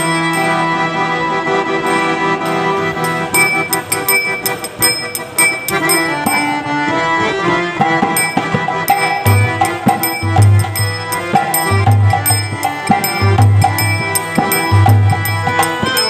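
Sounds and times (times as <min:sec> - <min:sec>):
harmonium melody: 0:00.0 - 0:16.0
sharp percussive strikes: 0:01.8 - 0:16.0.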